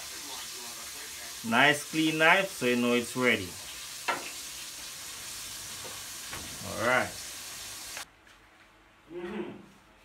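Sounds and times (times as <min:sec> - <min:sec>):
low kitchen background hiss: 0:00.0 - 0:10.0.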